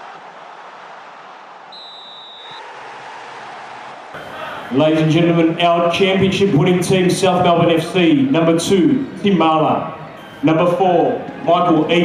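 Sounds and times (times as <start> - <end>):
crowd noise: 0.0 - 12.0
high whistle tone: 1.7 - 2.7, 10.2 - 10.8.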